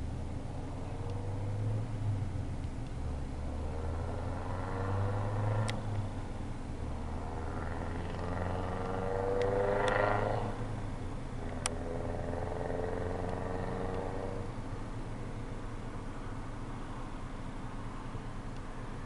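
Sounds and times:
vehicle passing by: 0.0 - 14.7
steady low hum: 0.0 - 19.0.

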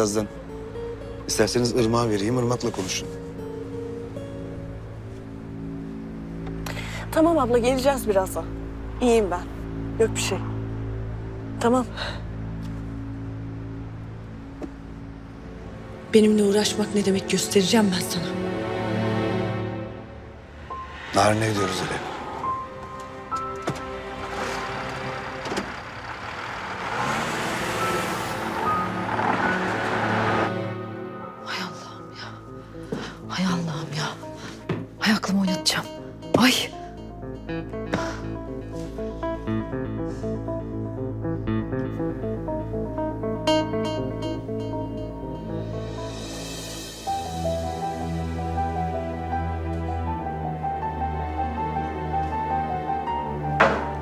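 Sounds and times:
car driving: 0.0 - 47.4, 51.1 - 54.0
low sustained drone music: 0.0 - 54.0.

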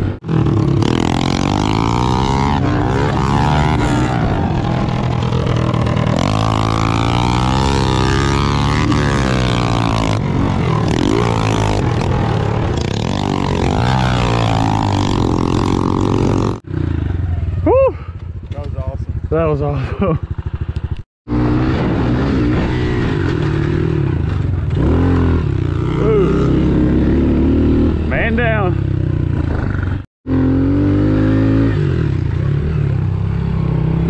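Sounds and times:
pit bike engine revving: 0.0 - 17.4, 20.0 - 34.0.

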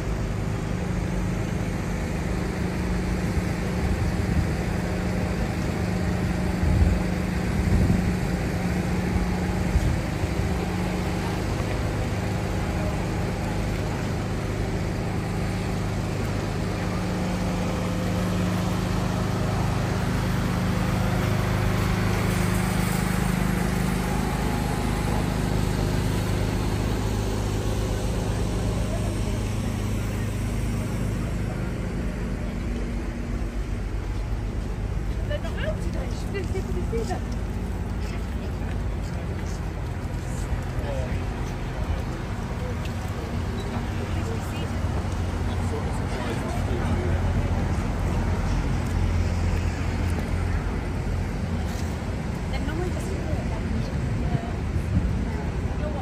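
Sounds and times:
low engine hum: 0.0 - 56.0
traffic rumble: 0.0 - 56.0
voices of passers-by: 0.0 - 56.0.

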